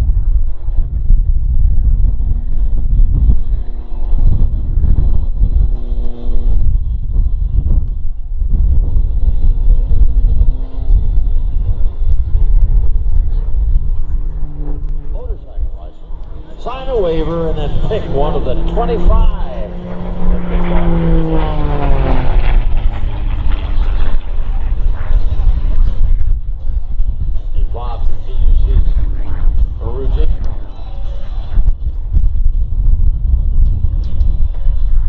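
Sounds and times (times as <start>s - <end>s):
airplane engine and propeller drone: 0.0s - 35.0s
wind buffeting microphone: 0.0s - 35.0s.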